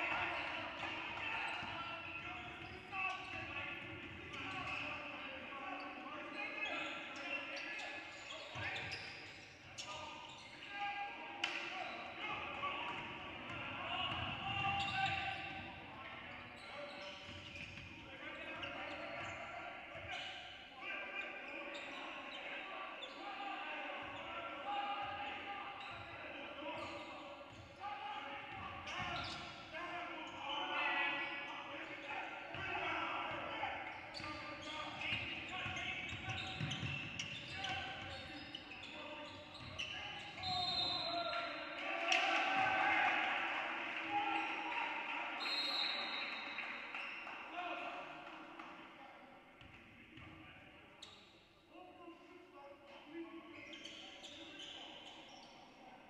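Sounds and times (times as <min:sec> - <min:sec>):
voices calling out in gym: 0:00.0 - 0:56.0.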